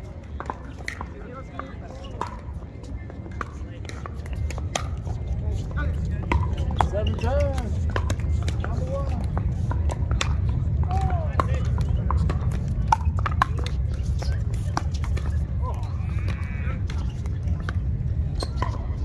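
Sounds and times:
distant voices: 0:00.0 - 0:19.0
paddles striking pickleballs: 0:00.2 - 0:02.6, 0:03.3 - 0:19.0.

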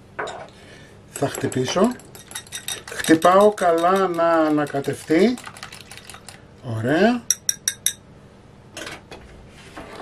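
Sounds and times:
glass bowl and whisk clatter: 0:01.2 - 0:06.4.

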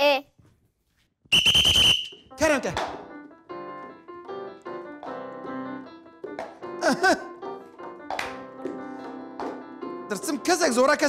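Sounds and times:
whistle blast: 0:01.3 - 0:02.3.

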